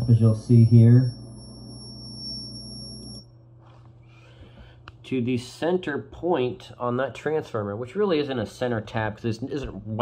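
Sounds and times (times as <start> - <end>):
electrical buzz with high whine: 0.0 - 3.7.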